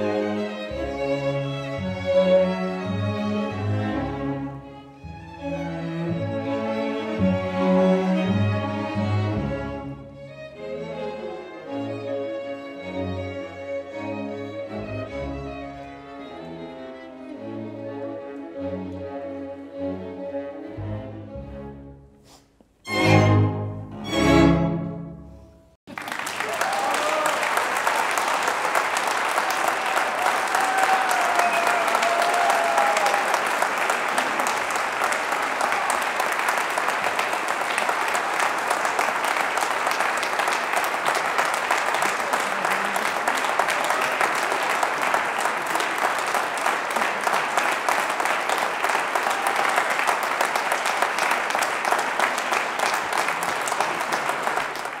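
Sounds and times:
audience applauding: 0:25.9 - 0:55.0.

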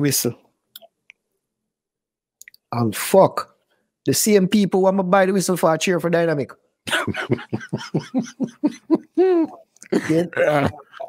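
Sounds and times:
man laughing heartily: 0:06.9 - 0:11.0.

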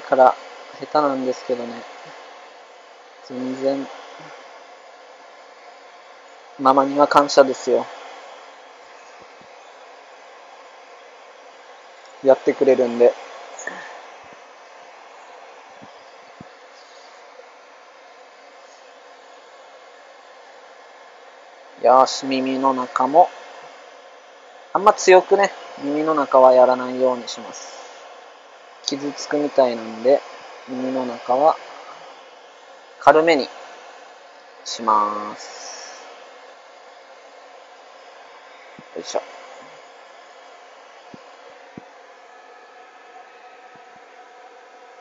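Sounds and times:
pet dryer blowing: 0:00.0 - 0:45.0.

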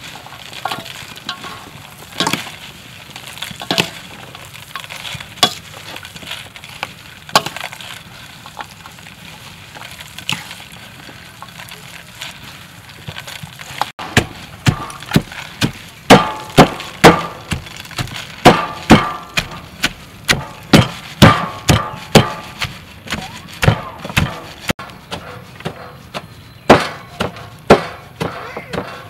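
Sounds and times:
wooden pestle pounding in steel bowl: 0:14.0 - 0:29.0.

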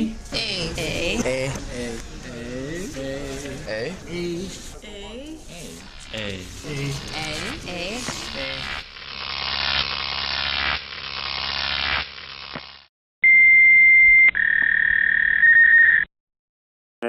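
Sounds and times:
electronic beep tone: 0:13.2 - 0:16.1.

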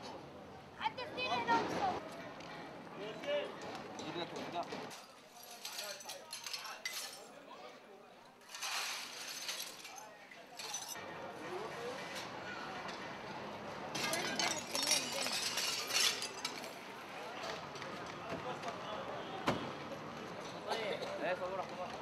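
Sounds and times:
people talking in background: 0:00.0 - 0:22.0
broken glass and debris clinking: 0:04.9 - 0:07.3, 0:08.4 - 0:11.0, 0:14.0 - 0:16.8.

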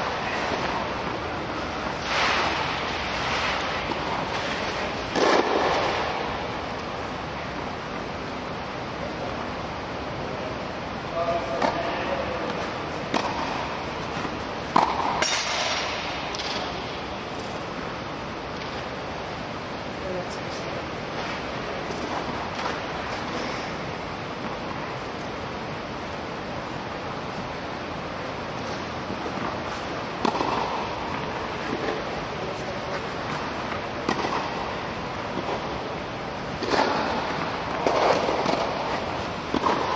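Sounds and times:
steady background hiss: 0:00.0 - 0:39.9
steady rushing background noise: 0:00.0 - 0:39.9
tennis ball struck by racket: 0:01.9 - 0:06.2, 0:12.6 - 0:16.7, 0:28.7 - 0:32.1, 0:32.9 - 0:34.7, 0:36.5 - 0:39.9.

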